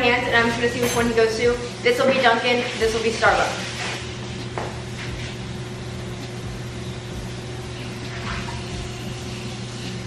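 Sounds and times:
appliance humming: 0.0s - 10.0s.

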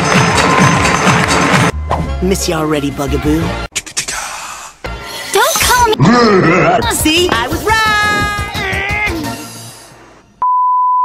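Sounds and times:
music: 0.0s - 3.7s, 4.8s - 6.0s, 6.8s - 10.2s.

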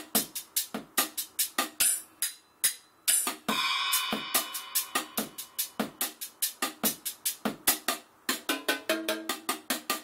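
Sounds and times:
drum kit quick run: 3.1s - 10.0s.

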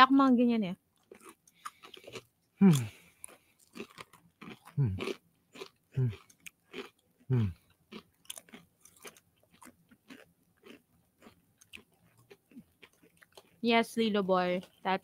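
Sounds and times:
crunchy snack chewing: 0.9s - 13.6s
person humming: 2.6s - 3.0s, 4.8s - 5.0s, 7.3s - 7.6s.

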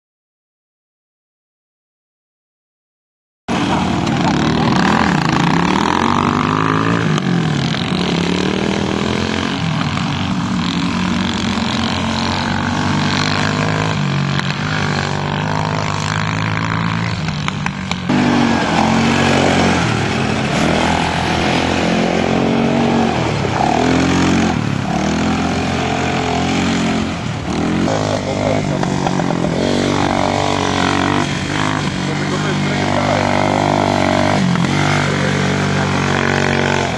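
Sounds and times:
quad bike engines revving: 3.5s - 36.9s.

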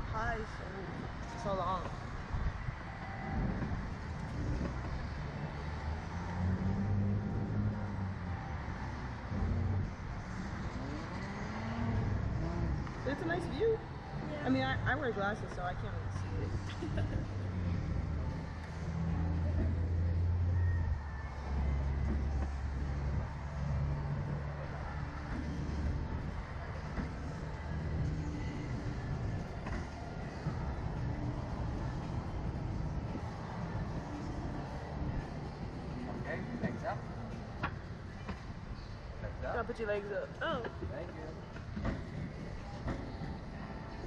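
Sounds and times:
steady rushing noise: 0.0s - 44.0s.

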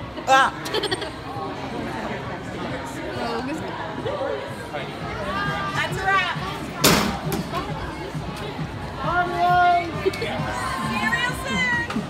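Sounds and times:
people chattering in a theater: 0.0s - 12.0s.

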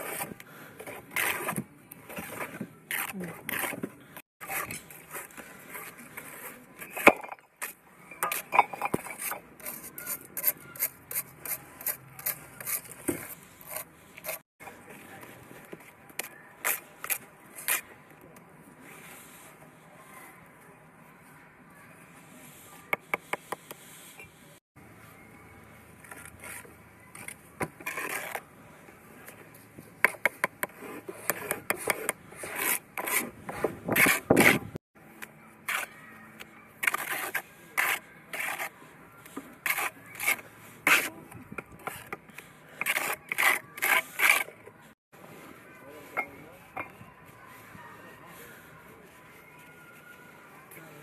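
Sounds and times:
trowel scraping and slapping mortar: 0.0s - 14.9s, 26.0s - 28.5s, 29.2s - 34.8s, 35.6s - 36.0s, 36.7s - 44.8s.

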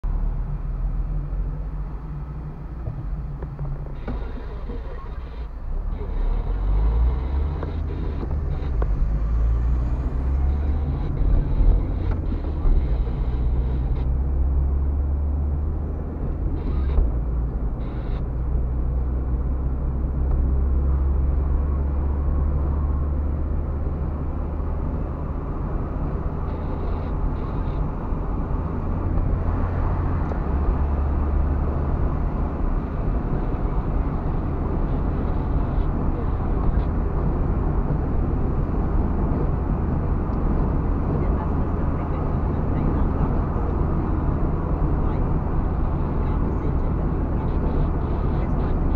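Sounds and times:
car engine drone: 0.0s - 48.9s
tyre and road noise: 0.0s - 48.9s.

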